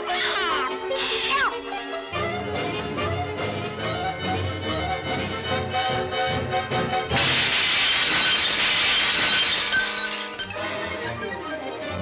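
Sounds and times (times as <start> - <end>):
orchestral cartoon music: 0.0 - 12.0
loud crashing sound effect: 7.1 - 10.0.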